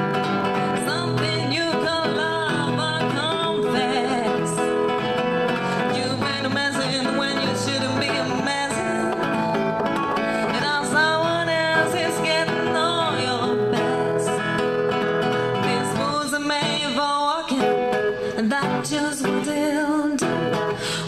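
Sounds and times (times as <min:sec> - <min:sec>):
acoustic guitar: 0:00.0 - 0:21.0
woman singing: 0:00.0 - 0:21.0.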